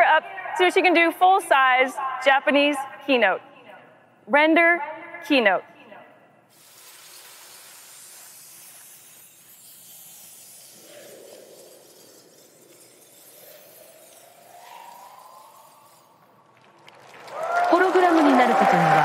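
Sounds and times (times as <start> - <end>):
shimmering electronic hiss: 6.5 - 16.5
slow rising electronic tone: 10.5 - 17.2.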